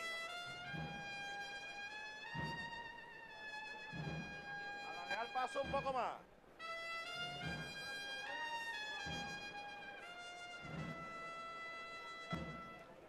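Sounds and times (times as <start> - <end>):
brass band playing slow march: 0.0 - 13.0
low drum beat: 0.2 - 6.2, 7.0 - 8.0, 9.0 - 12.8.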